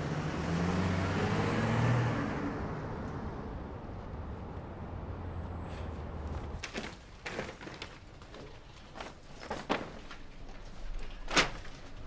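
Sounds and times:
car engine pulling away: 0:00.0 - 0:03.6.

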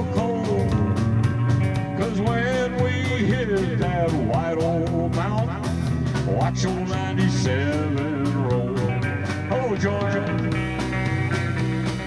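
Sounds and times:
electric guitar strummed: 0:00.0 - 0:12.0
live country band: 0:00.0 - 0:12.0.

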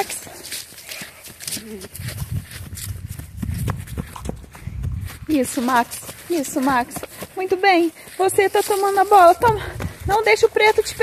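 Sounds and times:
footsteps on grass: 0:00.0 - 0:11.0.

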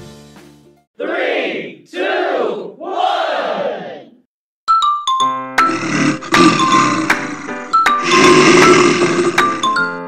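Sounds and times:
chiming tune: 0:04.7 - 0:05.6.

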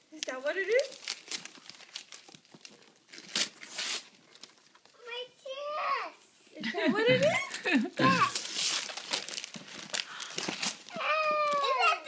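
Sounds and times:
packaging crinkling and tearing: 0:00.2 - 0:05.0, 0:07.4 - 0:12.0.

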